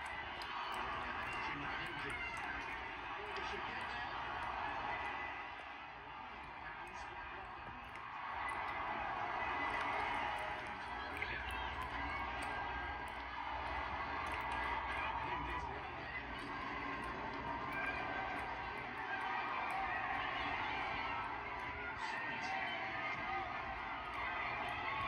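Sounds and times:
stadium crowd through tv speakers: 0:00.0 - 0:25.0.

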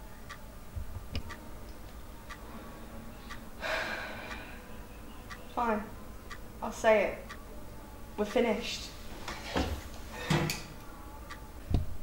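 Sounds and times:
clock ticking: 0:01.2 - 0:01.5, 0:04.2 - 0:04.6, 0:05.2 - 0:07.4.

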